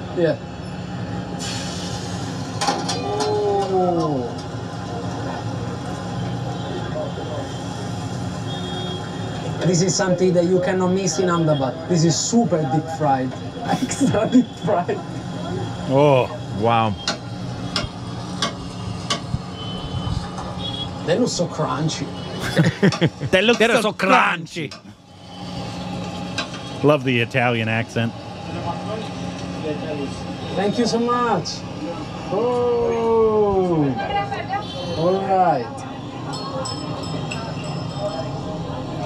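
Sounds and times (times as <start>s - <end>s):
frying oil hum and hiss: 1.4s - 2.7s.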